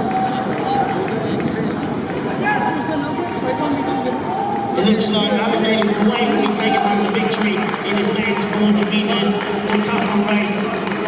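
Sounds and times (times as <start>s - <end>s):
stadium crowd cheering and shouting: 0.0s - 11.0s.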